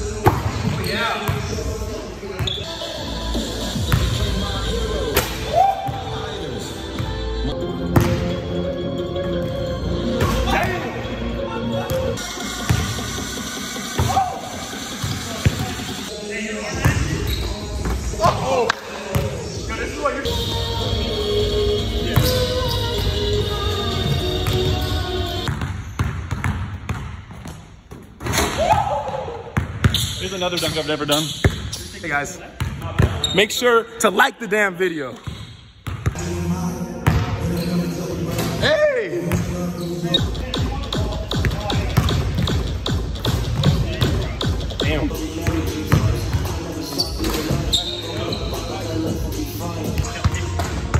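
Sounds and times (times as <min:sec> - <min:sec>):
music with vocals: 0:00.0 - 0:25.5, 0:35.9 - 0:50.9
basketball bouncing on hardwood: 0:25.5 - 0:27.6.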